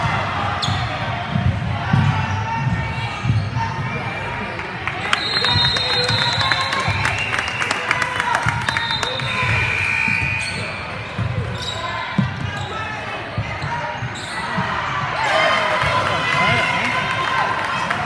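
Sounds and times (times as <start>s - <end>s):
sneakers squeaking: 0.6s - 7.3s, 8.4s - 15.4s.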